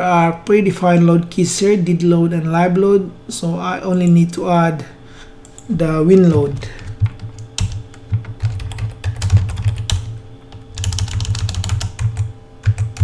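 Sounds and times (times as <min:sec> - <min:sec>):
typing on computer keyboard: 0:06.8 - 0:10.1, 0:10.7 - 0:13.0.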